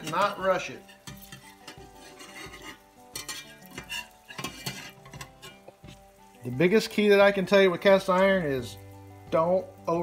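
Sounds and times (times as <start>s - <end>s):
metal spatula scraping pan: 0.0s - 6.2s
egg sizzling in a pan: 0.0s - 10.0s.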